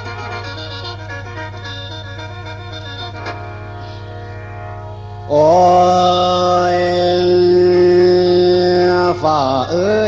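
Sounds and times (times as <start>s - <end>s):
low drone accompaniment: 0.0s - 10.0s
man singing a held note: 5.3s - 10.0s.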